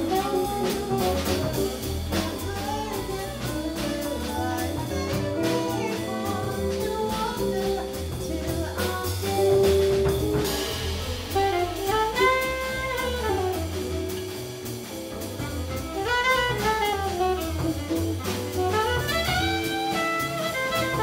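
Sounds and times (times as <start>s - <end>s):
guitar: 0.0s - 10.7s
alto saxophone melody: 0.0s - 21.0s
drum kit with cymbals: 0.0s - 21.0s
upright bass: 0.0s - 21.0s.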